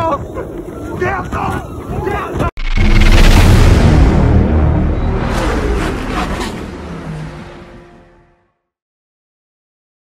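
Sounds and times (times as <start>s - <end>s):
dense noisy rumble: 2.6s - 8.2s.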